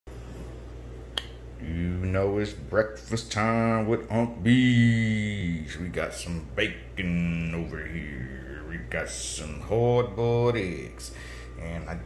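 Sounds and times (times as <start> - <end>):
low steady hum: 0.1 - 12.0
man speaking: 1.6 - 12.0.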